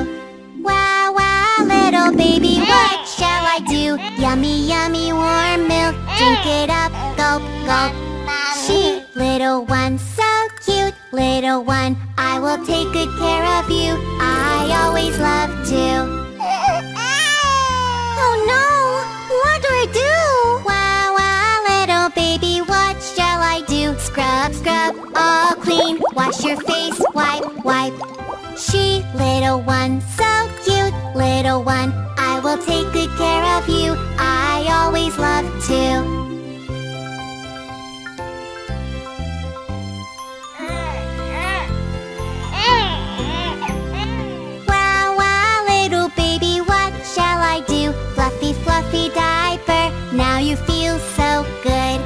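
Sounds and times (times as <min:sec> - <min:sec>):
children's song music: 0:00.0 - 0:19.0, 0:19.6 - 0:52.0
brief warbling sound: 0:01.5 - 0:04.0, 0:24.7 - 0:28.6
cartoon baby crying: 0:01.6 - 0:04.4, 0:06.1 - 0:06.6, 0:16.4 - 0:19.3, 0:40.6 - 0:41.8, 0:42.6 - 0:44.5.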